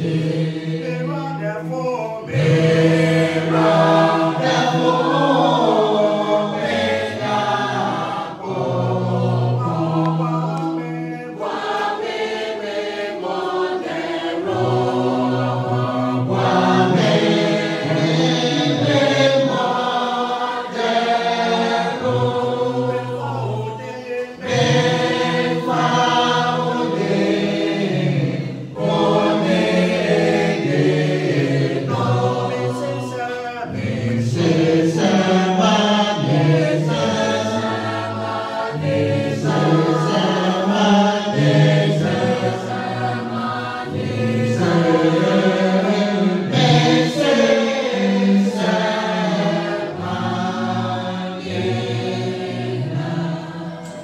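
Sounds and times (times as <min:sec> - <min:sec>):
group singing a hymn a cappella: 0:00.0 - 0:54.0.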